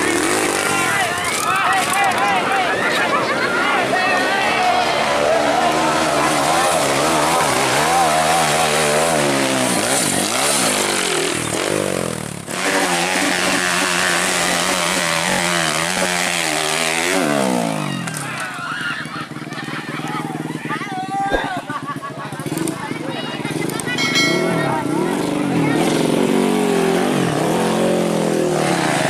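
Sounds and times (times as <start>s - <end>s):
dirt bike engine revving: 0.0s - 2.2s, 3.2s - 20.6s, 21.3s - 29.0s.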